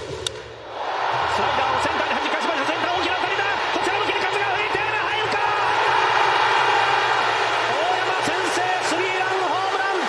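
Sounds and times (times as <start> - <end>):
crowd cheering: 0.6 - 10.0.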